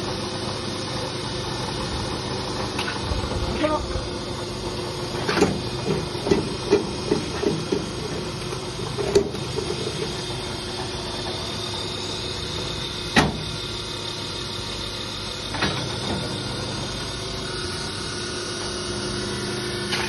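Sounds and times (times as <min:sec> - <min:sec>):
machine motor hum: 0:00.0 - 0:20.0
metal clunks: 0:05.2 - 0:08.3, 0:13.1 - 0:13.5.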